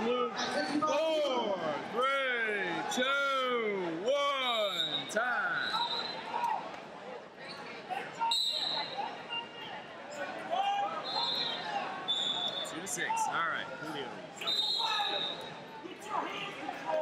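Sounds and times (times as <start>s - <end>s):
crowd chatter: 0.0s - 17.0s
referee whistle blasts: 4.5s - 6.3s, 8.2s - 9.0s, 11.0s - 12.8s, 14.4s - 15.6s
loud shouts: 7.9s - 17.0s.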